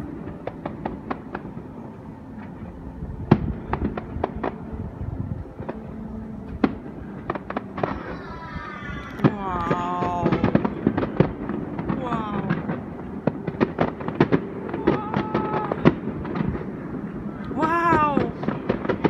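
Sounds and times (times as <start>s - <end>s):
fireworks bangs and crackles: 0.0s - 19.0s
person's voice: 9.2s - 10.6s, 11.9s - 12.7s, 17.5s - 18.4s.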